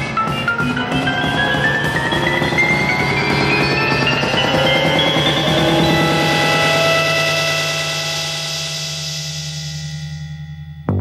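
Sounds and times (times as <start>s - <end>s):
rock band sustained chord: 0.0s - 10.2s.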